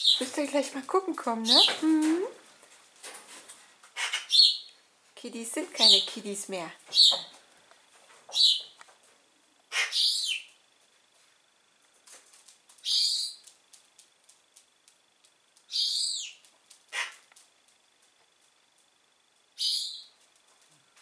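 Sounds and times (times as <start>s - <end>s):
young pigeons squeaky calls: 4.0s - 4.7s, 8.3s - 8.7s, 9.7s - 10.5s, 12.8s - 13.4s, 15.7s - 16.4s.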